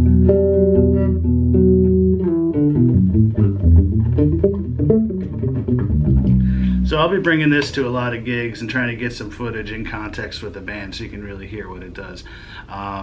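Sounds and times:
electric bass played fingerstyle: 0.0 - 10.4.

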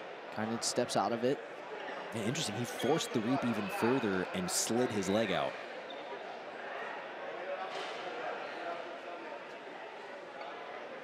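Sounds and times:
arena crowd murmur: 0.0 - 11.0.

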